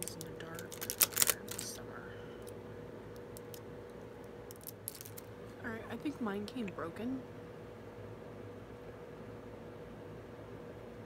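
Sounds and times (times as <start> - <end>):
packaging clicks and scraping: 0.0 - 1.8, 4.5 - 5.3
faint steady hum: 0.0 - 11.0.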